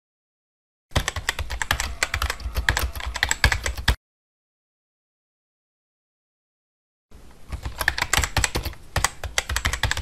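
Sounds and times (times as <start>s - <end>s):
rapid irregular clicking: 7.5s - 10.0s.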